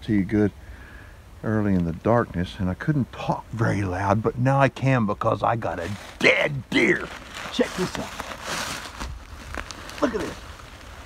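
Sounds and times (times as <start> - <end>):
footsteps in dry leaves: 5.6 - 11.0.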